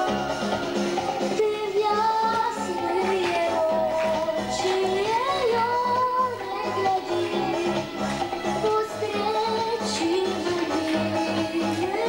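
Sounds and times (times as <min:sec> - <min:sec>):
pop accompaniment with steady beat: 0:00.0 - 0:12.0
girl singing into a microphone: 0:01.3 - 0:07.9, 0:08.6 - 0:12.0.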